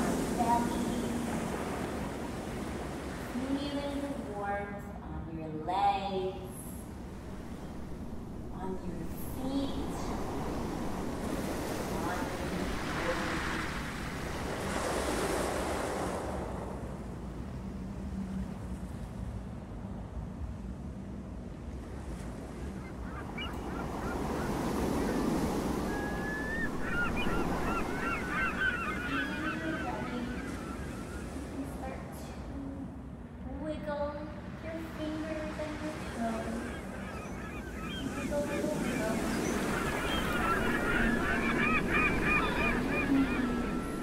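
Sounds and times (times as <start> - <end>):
gulls calling: 0.0 - 4.4, 7.0 - 15.9, 21.9 - 33.0, 34.5 - 44.0
surf washing: 0.0 - 4.7, 6.4 - 44.0.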